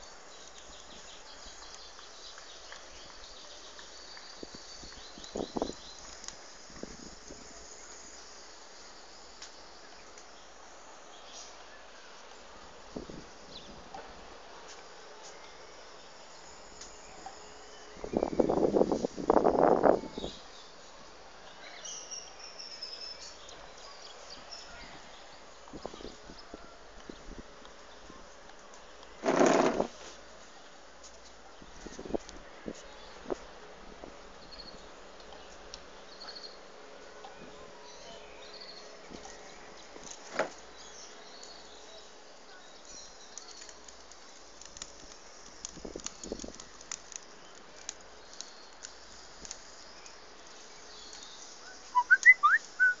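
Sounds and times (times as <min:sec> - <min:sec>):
outdoor background hiss: 0:00.0 - 0:53.0
faint ticks: 0:09.4 - 0:10.3, 0:43.3 - 0:51.4
whistled notes: 0:51.7 - 0:53.0.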